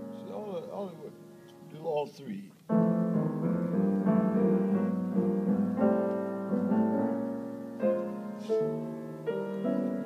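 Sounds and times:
jazz piano chords: 0.0s - 10.0s.

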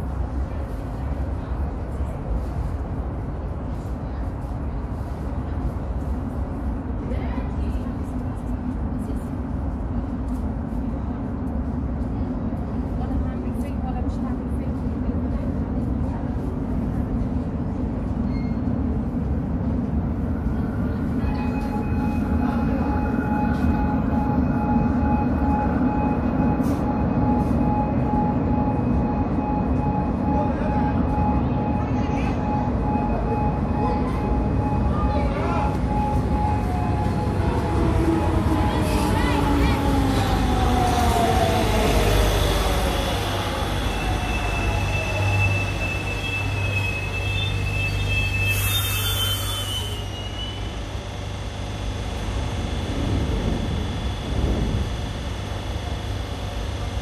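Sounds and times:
train rumble in tunnel: 0.0s - 57.0s
high whine: 41.2s - 57.0s.

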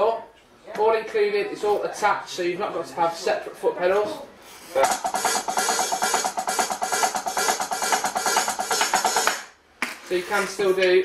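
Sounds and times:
electronic drum kit beat: 4.8s - 9.6s.

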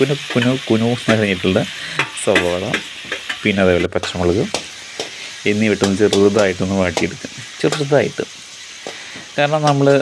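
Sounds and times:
vegetables sizzling in hot oil: 0.0s - 10.0s
person speaking: 5.4s - 8.3s.

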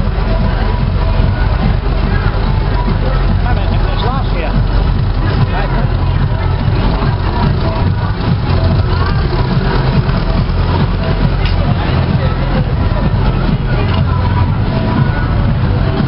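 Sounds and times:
crowd voices: 0.0s - 16.0s
music: 0.0s - 16.0s
tractor engine rumble: 0.0s - 16.0s.

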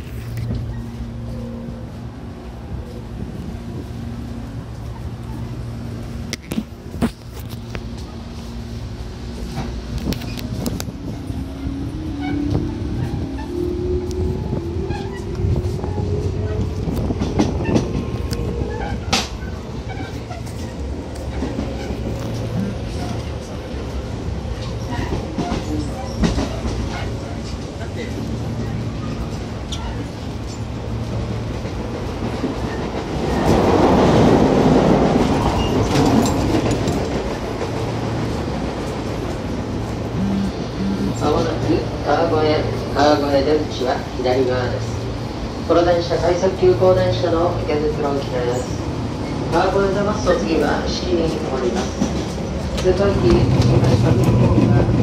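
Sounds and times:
electric train rumbling: 0.0s - 55.0s
wheels clicking over rail joints: 29.0s - 40.0s
rushing noise: 30.2s - 43.0s.

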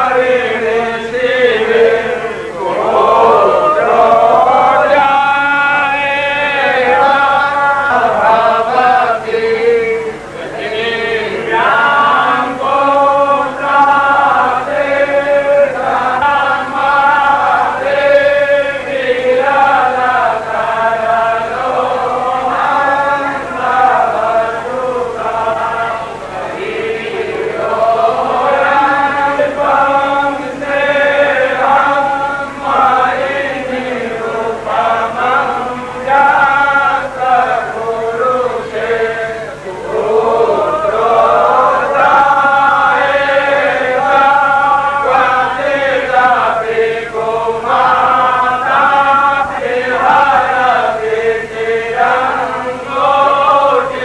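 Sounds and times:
voices chanting a devotional song: 0.0s - 54.0s.

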